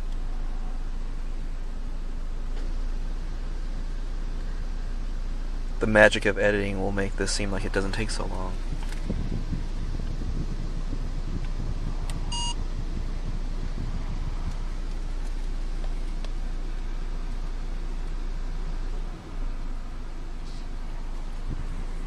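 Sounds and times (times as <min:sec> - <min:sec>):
car idling: 0:00.0 - 0:22.0
short electronic beep: 0:12.3 - 0:12.6.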